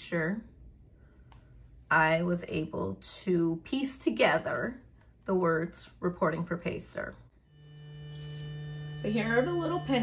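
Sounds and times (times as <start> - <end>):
laser engraver electrical hum: 7.4 - 10.0.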